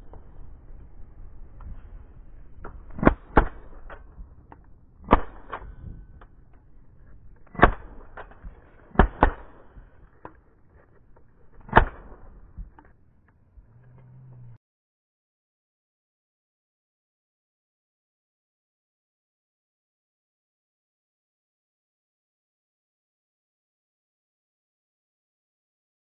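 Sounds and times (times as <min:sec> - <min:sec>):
shotgun shots: 0:02.6 - 0:04.4, 0:05.0 - 0:06.2, 0:07.4 - 0:10.2, 0:11.5 - 0:12.8.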